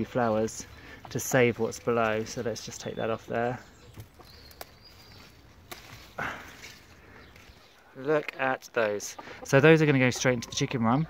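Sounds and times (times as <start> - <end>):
leaves rustling: 0.0 - 8.1
plant tops snapping: 3.9 - 7.5.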